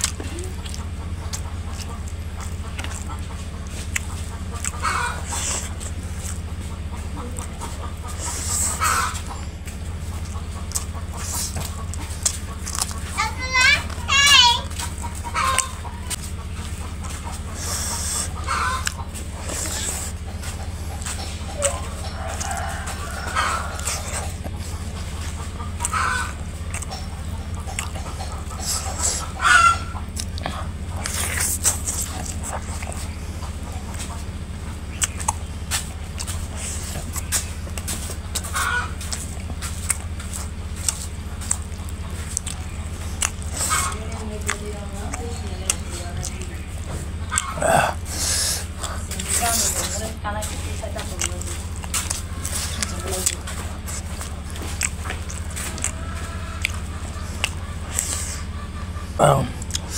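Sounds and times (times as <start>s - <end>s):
animal calls: 0.0s - 59.9s
chewing and mouth clicks: 0.0s - 59.9s
steady low hum: 0.0s - 59.9s.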